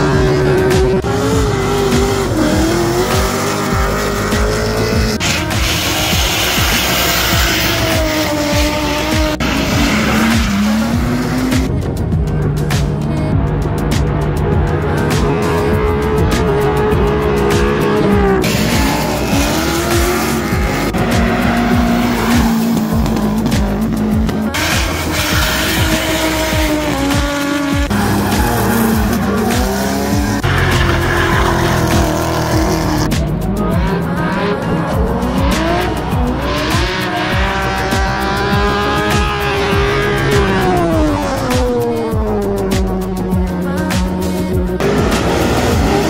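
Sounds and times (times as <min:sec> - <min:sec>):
background music: 0:00.0 - 0:46.0
car engines revving hard: 0:00.0 - 0:46.0.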